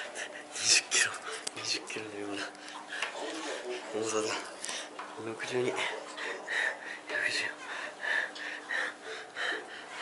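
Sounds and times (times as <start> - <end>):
person whispering: 7.1 - 7.6.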